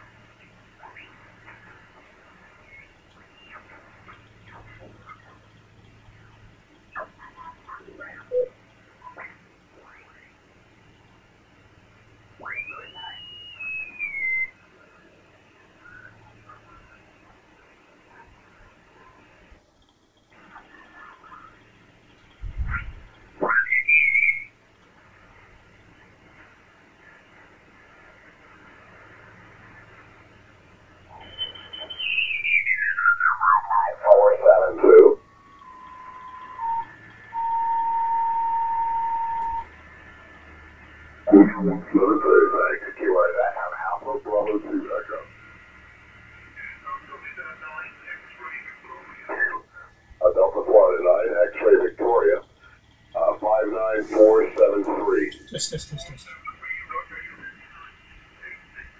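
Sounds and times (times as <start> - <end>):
gliding radio whistles: 0.0 - 6.3, 6.9 - 10.5, 11.8 - 19.5, 22.5 - 58.9
garbled radio voices: 0.0 - 11.2, 11.9 - 19.5, 20.3 - 24.5, 31.0 - 39.7, 40.9 - 58.9
steady radio tone: 0.0 - 19.6, 20.3 - 58.9
radio band hiss: 0.0 - 58.9.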